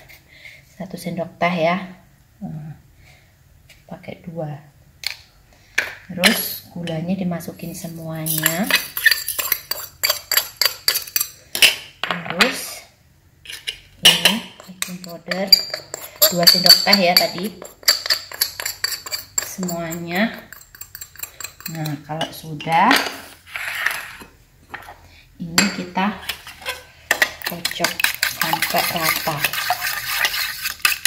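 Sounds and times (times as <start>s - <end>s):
spoon stirring in metal pot: 7.6s - 11.8s, 13.4s - 25.0s, 25.6s - 31.0s.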